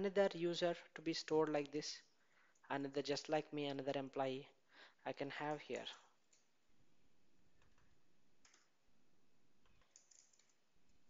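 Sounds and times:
faint keyboard typing: 5.7s - 6.6s, 7.6s - 8.9s, 9.6s - 11.0s.

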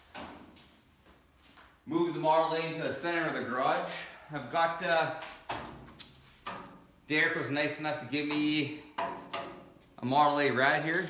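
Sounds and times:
man's voice: 10.0s - 11.0s.

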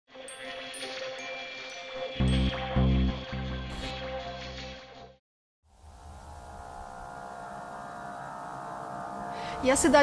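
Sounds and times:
held droning tones: 5.8s - 10.0s.

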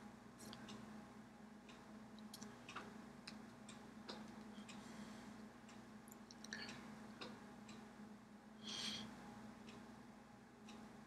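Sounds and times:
steady low hum: 0.0s - 11.0s
faint clicks and taps: 1.7s - 4.8s.

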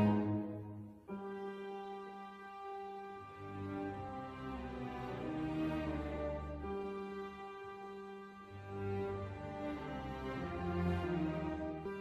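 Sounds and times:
held bowed string notes: 0.0s - 12.0s.

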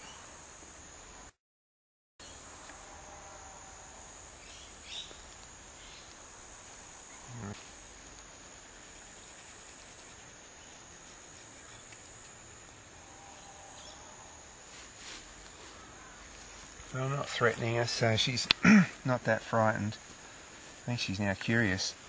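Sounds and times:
high-pitched insect drone: 2.2s - 22.0s.

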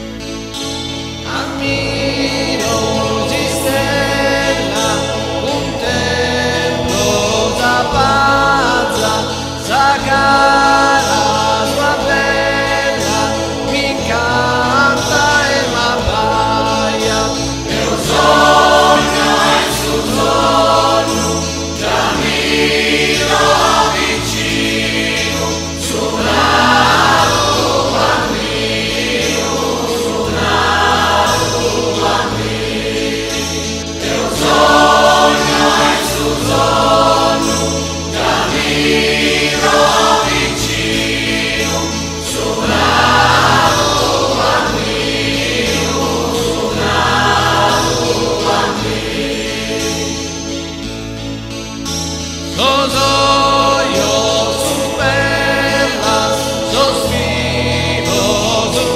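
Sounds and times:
mixed choir singing: 0.0s - 51.5s, 52.6s - 58.9s
instrumental accompaniment low notes: 0.0s - 58.9s.

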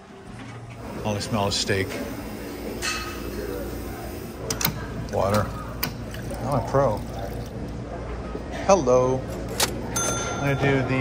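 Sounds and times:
ice machine humming: 0.1s - 8.0s
glassy clink: 9.9s - 11.0s.

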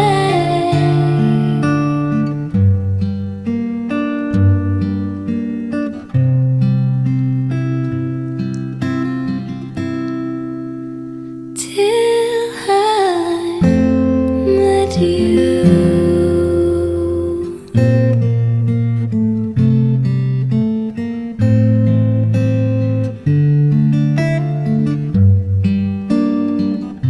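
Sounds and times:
person singing: 0.0s - 2.2s, 11.6s - 18.0s
acoustic guitar playing: 0.0s - 27.0s.

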